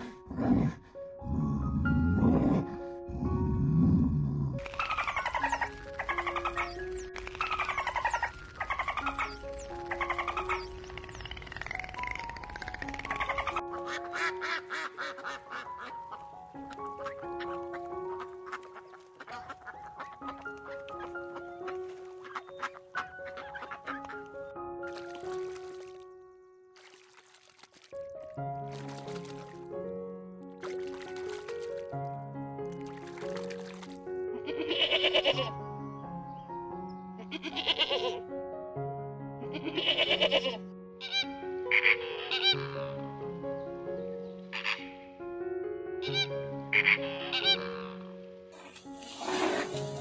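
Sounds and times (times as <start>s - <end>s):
simple background music: 0.0s - 50.0s
goat bleating: 34.5s - 35.4s, 37.2s - 38.2s, 39.6s - 40.6s
duck quacking: 41.7s - 42.7s.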